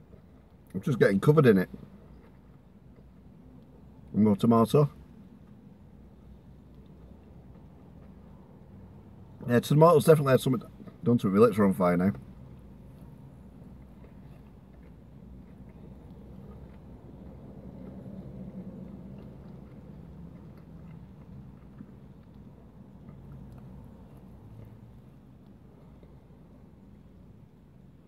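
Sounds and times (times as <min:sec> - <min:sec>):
man chewing food: 0:01.7 - 0:04.1, 0:05.0 - 0:09.4, 0:12.2 - 0:27.4.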